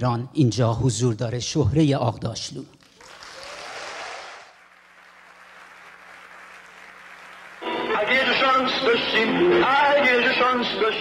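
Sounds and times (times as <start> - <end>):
audience applauding: 2.8 - 8.6.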